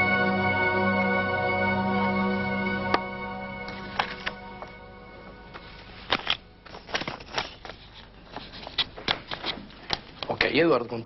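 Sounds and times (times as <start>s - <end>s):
background music: 0.0s - 6.6s
paper rustling and crackling: 6.0s - 10.0s.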